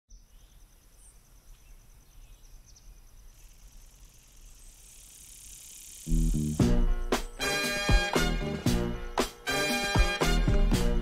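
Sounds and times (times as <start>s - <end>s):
bird chirps: 0.1s - 6.6s
high insect buzz: 0.3s - 10.8s
insect trilling: 0.4s - 6.9s.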